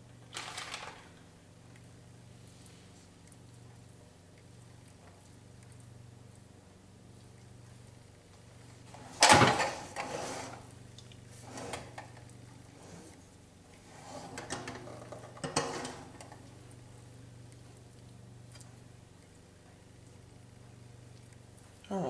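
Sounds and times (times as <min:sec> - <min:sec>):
spatula scraping pan: 0:13.9 - 0:16.1.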